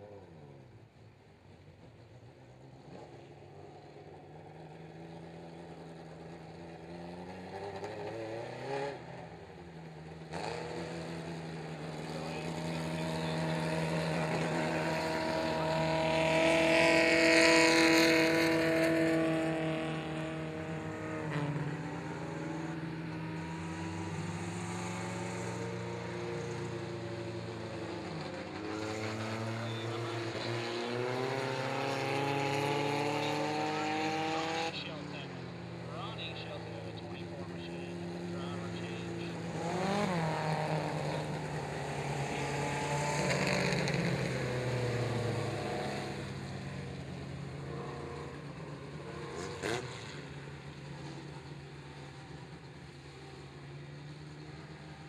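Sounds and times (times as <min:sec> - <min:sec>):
race car engines accelerating: 0:00.0 - 0:55.0
car passing close: 0:10.2 - 0:55.0.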